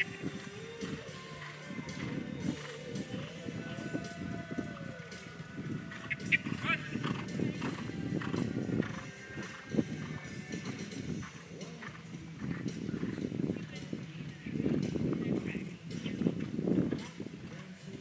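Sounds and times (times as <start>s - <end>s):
horse hoofbeats on sand: 0.0s - 18.0s.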